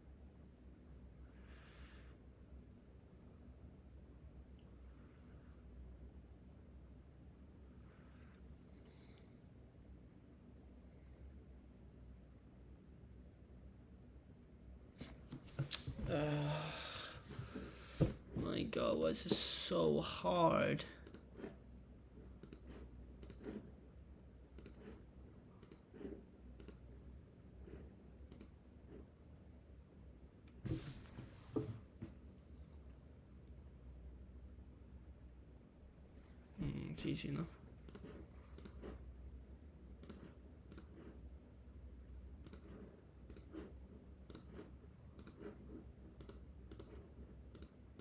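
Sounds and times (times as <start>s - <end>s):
computer mouse clicks: 21.0s - 21.3s, 22.4s - 23.6s, 24.5s - 25.0s, 25.6s - 26.9s, 28.2s - 28.6s, 37.8s - 39.0s, 40.0s - 41.2s, 42.4s - 48.0s.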